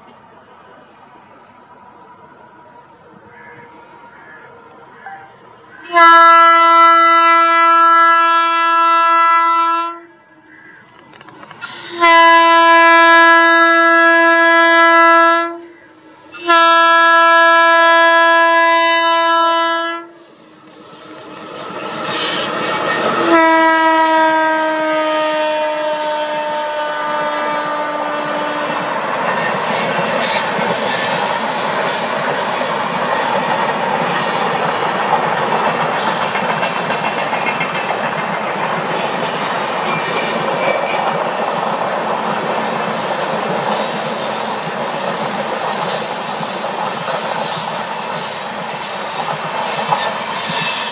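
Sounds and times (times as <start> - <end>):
train coaches rumbling and clacking: 0.0 - 7.4, 10.8 - 15.1, 20.0 - 50.9
locomotive horn blasts: 5.8 - 10.2, 11.6 - 15.7, 16.4 - 20.2, 23.0 - 28.9.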